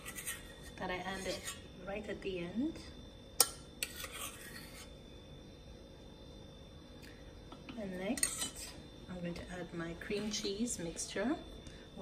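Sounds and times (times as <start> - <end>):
fork scraping plate: 0.0 - 1.7, 3.8 - 5.0, 8.2 - 8.8.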